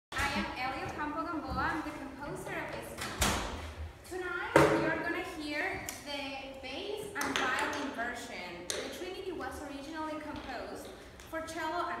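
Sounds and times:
woman speaking: 0.2s - 3.0s, 4.1s - 12.0s.

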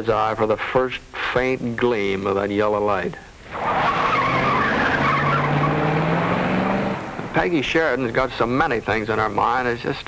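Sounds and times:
car engines running and revving: 3.5s - 7.5s.

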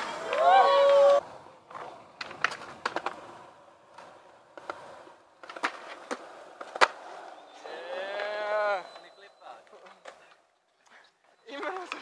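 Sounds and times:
man shouting a long cheer: 0.0s - 1.2s.

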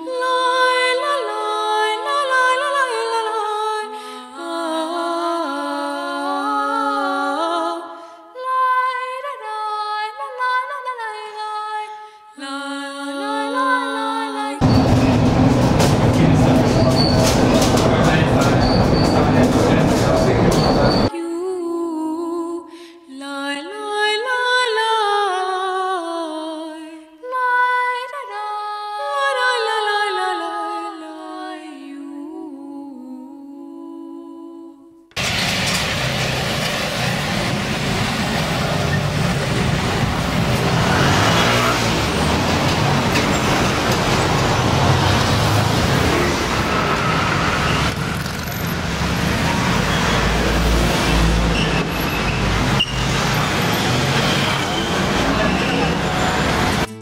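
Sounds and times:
cars and scooters passing: 14.6s - 21.1s, 35.2s - 56.9s
clicks of rails: 14.6s - 21.1s
high-pitched wheel squeals: 14.6s - 21.1s, 38.7s - 56.9s
wheels rumbling on track: 14.6s - 21.1s, 35.2s - 56.9s.

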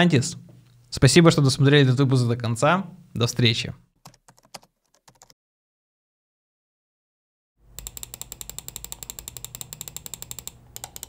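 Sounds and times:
computer keyboard typing: 4.0s - 5.4s, 7.8s - 11.0s.

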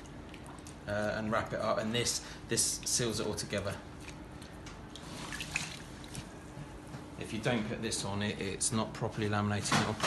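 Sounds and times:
water splashing and dripping: 4.9s - 6.3s.

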